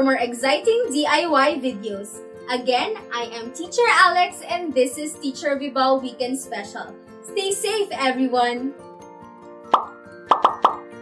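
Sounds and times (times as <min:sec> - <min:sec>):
background music: 0:00.0 - 0:11.0
cartoon pop sound effects: 0:09.7 - 0:11.0.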